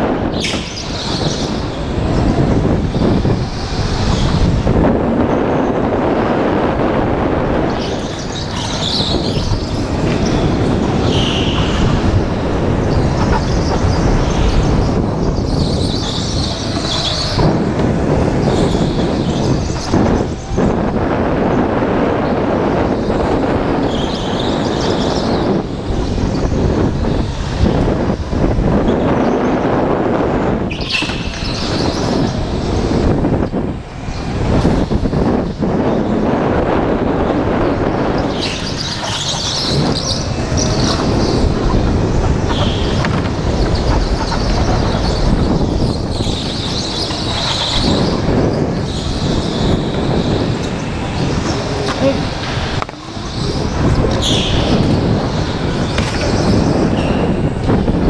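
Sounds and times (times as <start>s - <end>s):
wind on microphone: 0.0s - 58.0s
tyres squealing: 37.7s - 57.6s.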